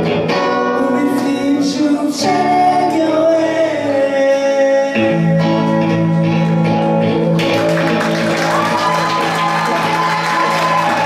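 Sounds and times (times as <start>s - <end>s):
audience clapping and cheering: 7.4s - 11.0s.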